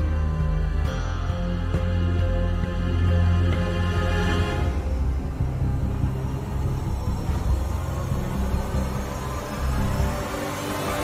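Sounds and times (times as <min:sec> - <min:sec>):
low rumbling music drone: 0:00.0 - 0:11.0.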